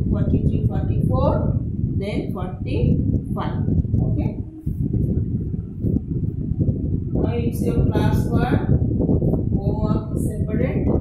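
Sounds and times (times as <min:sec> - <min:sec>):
rough low rumble: 0:00.0 - 0:11.0.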